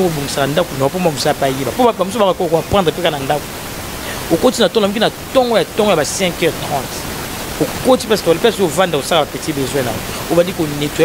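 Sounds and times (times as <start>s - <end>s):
person speaking: 0.0s - 11.0s
steady background hiss: 0.0s - 11.0s.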